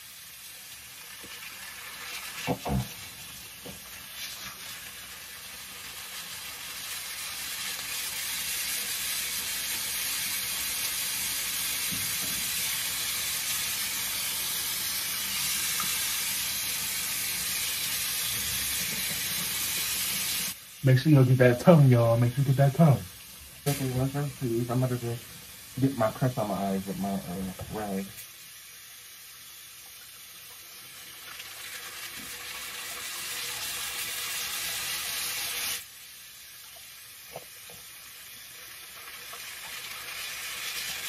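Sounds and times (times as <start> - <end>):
faucet water running into sink: 0.8 - 28.1, 28.8 - 41.0.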